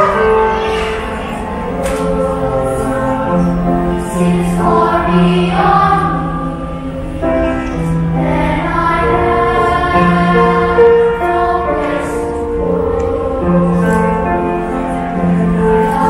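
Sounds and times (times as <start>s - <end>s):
children's choir singing: 0.0s - 16.0s.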